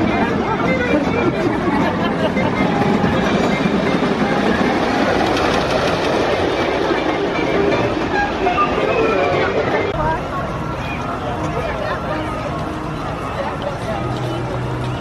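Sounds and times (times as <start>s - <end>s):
roller coaster on wooden track: 0.1s - 10.2s.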